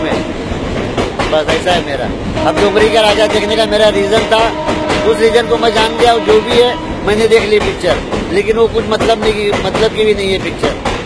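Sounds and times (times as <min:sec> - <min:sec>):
train wheels clattering: 0:00.0 - 0:11.0
man's voice: 0:01.3 - 0:10.8.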